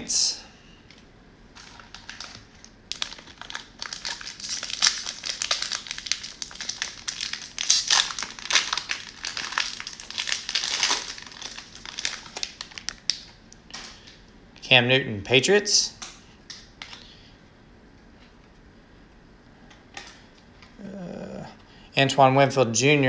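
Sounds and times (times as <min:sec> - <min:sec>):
plastic wrapper crinkling: 0:01.6 - 0:14.2.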